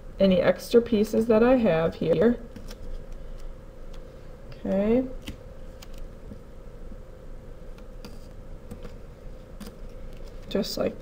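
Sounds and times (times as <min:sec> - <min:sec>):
steady low hum: 0:00.0 - 0:11.0
tape clicks and rustles: 0:02.5 - 0:04.1, 0:05.2 - 0:06.4, 0:07.7 - 0:10.6.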